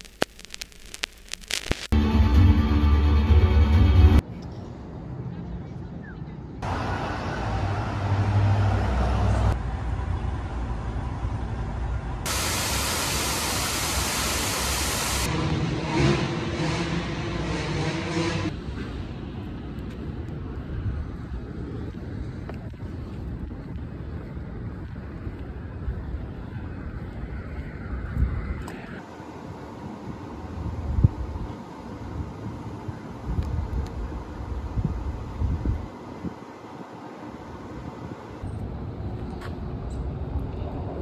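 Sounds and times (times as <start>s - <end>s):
street traffic hiss: 6.6s - 15.4s, 18.5s - 40.9s.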